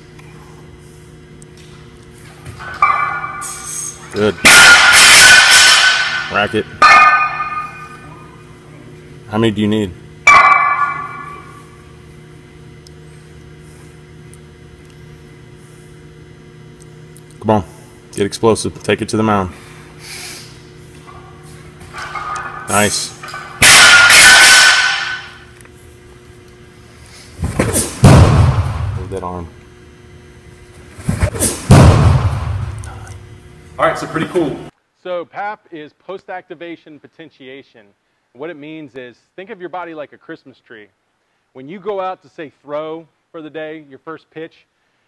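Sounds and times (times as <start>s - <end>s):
steady low hum: 0.0s - 45.0s
barbell plate metal clang: 4.5s - 8.0s, 10.3s - 11.5s, 22.0s - 25.4s
loud thump echoing in hall: 27.5s - 29.0s, 31.6s - 32.8s.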